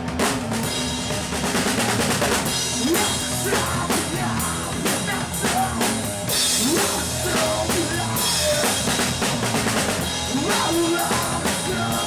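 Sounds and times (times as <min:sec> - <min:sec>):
electric guitar: 0:00.0 - 0:12.0
heavy rock band playing live: 0:00.0 - 0:12.0.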